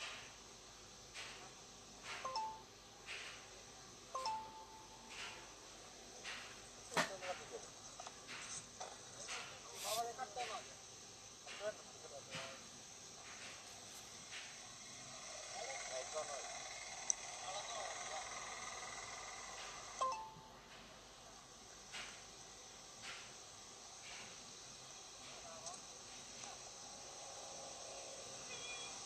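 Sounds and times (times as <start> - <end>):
crickets chirping: 1.7 - 29.0
brief scratchy noises: 9.7 - 10.1.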